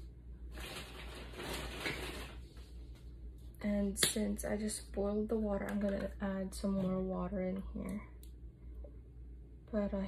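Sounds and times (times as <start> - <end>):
packaged items rustling: 0.5 - 2.6.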